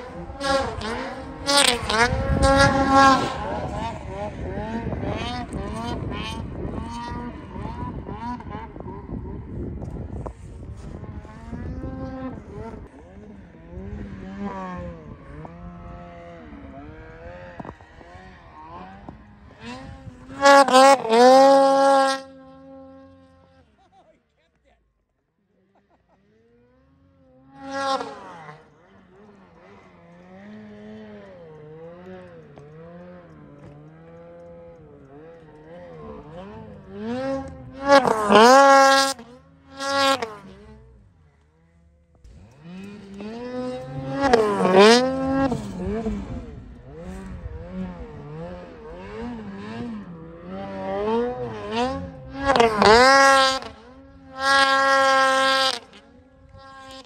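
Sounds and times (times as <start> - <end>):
snowmobile engine revving: 0.0 - 24.7, 25.4 - 57.0.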